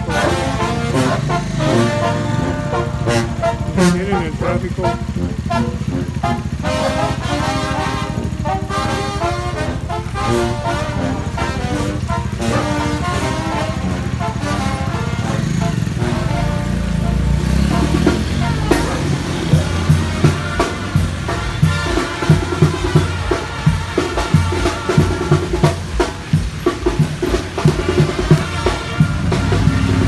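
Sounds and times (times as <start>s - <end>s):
brass band playing: 0.0s - 30.0s
vehicle engine running: 0.0s - 30.0s.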